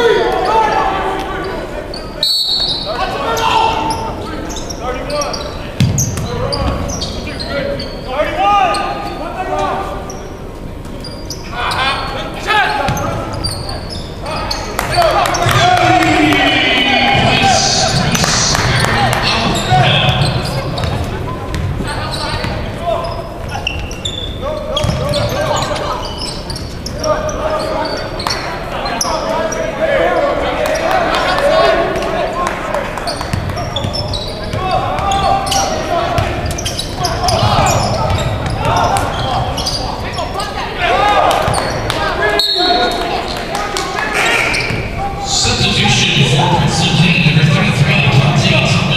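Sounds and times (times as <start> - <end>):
basketball bouncing on hardwood: 5.8 - 6.0
people calling out: 14.3 - 21.1, 33.7 - 48.9.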